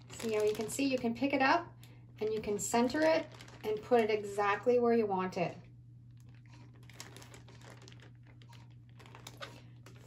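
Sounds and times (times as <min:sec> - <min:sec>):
plastic sheet crinkling and clicking: 0:00.0 - 0:04.7, 0:06.1 - 0:10.0.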